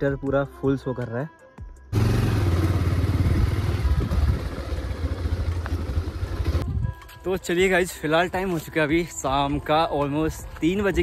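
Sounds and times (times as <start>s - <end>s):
motorcycle engine rumbling: 1.9s - 6.8s
wind and road noise: 2.0s - 11.0s.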